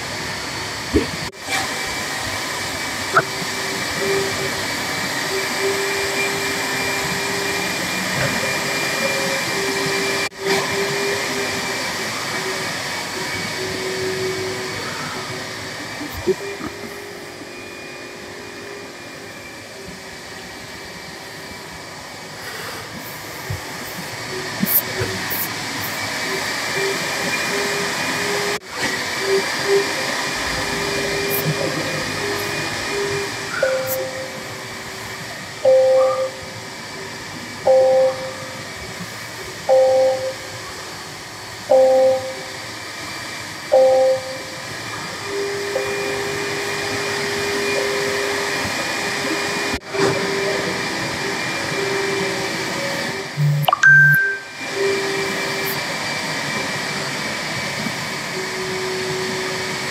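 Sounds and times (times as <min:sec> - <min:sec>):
two-note electronic chime: 0:35.6 - 0:36.5, 0:37.7 - 0:38.4, 0:53.6 - 0:54.7.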